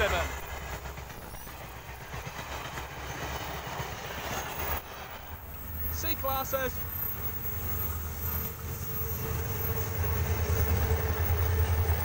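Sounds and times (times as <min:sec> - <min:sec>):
train carriages rolling on rails: 0:00.0 - 0:12.0.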